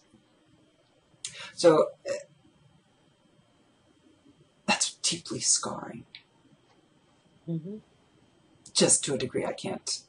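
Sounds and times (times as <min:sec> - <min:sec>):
woman saying uh: 0:07.5 - 0:07.8.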